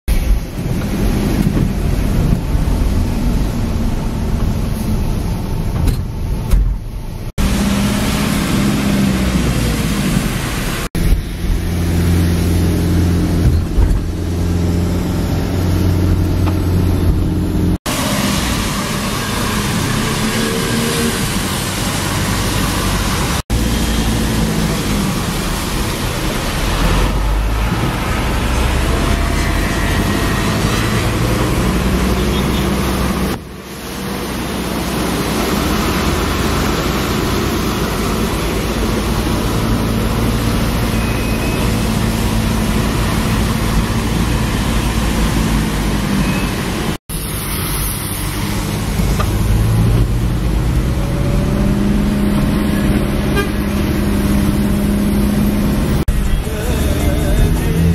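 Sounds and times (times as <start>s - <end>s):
car engine drone: 0.1s - 57.9s
passing traffic: 0.1s - 57.9s
tyre hiss on wet road: 47.1s - 49.0s.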